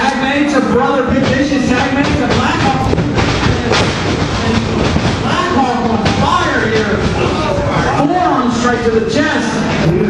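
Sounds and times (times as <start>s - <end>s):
loud crowd din: 0.0s - 10.0s.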